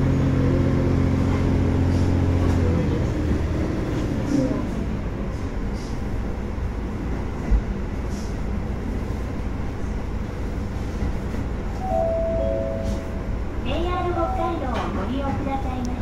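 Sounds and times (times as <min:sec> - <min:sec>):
railcar engine rumble: 0:00.0 - 0:16.0.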